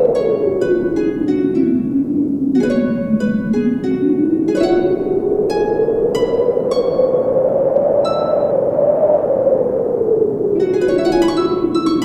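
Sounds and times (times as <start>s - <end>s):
plucked harp notes: 0.0s - 7.3s, 8.0s - 8.5s, 10.6s - 12.0s
wind-like whoosh: 0.0s - 12.0s.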